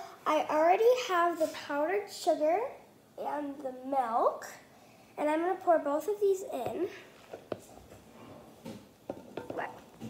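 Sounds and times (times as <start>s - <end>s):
plastic cup tapping bowl: 6.6s - 7.8s, 8.6s - 10.0s.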